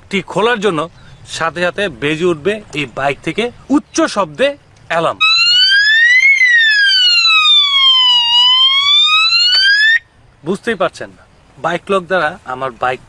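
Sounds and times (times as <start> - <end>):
alarm siren sweeping tone: 5.2 - 10.0.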